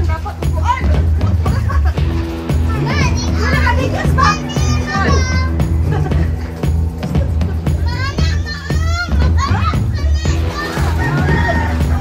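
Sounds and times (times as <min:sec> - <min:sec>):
background music with steady beat: 0:00.0 - 0:12.0
children calling and shrieking: 0:02.6 - 0:12.0.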